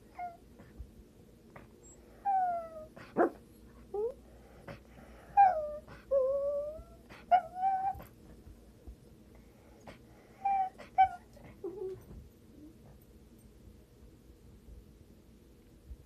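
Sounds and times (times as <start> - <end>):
dog whining: 0.0 - 0.8, 1.6 - 8.3, 10.3 - 12.8.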